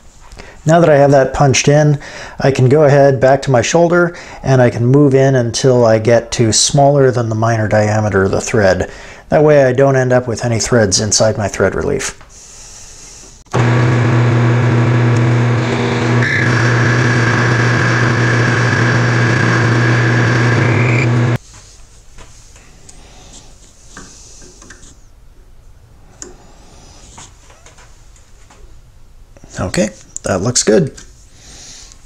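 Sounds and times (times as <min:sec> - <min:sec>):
metal lathe humming and whining: 0:13.6 - 0:21.4
faint handling sounds: 0:21.4 - 0:25.0.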